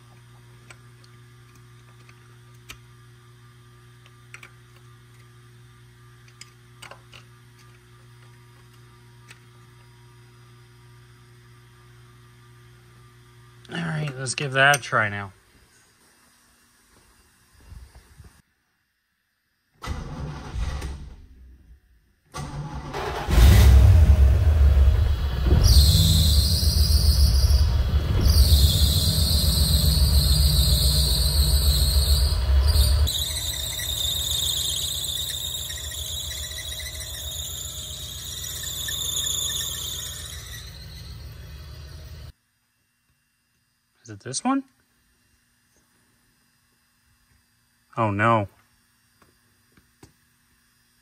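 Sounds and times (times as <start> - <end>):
car engine starting and idling: 19.8 - 21.3, 22.3 - 33.6
drive belt squealing: 23.0 - 42.3.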